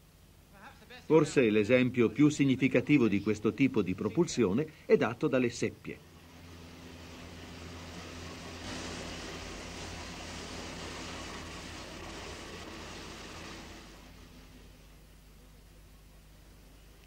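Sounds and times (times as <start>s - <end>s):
water splashing and streaming: 6.3s - 14.3s.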